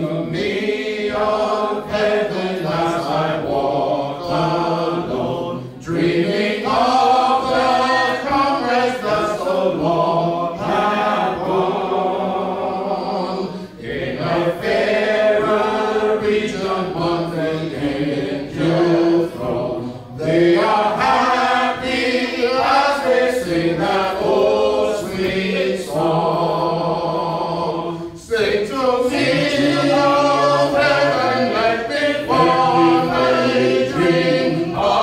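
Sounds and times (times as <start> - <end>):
congregation singing a hymn: 0.0 - 35.0.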